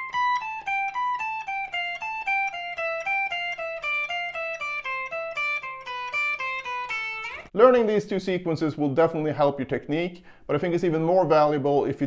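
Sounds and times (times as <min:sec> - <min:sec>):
clean electric guitar scale: 0:00.0 - 0:07.5.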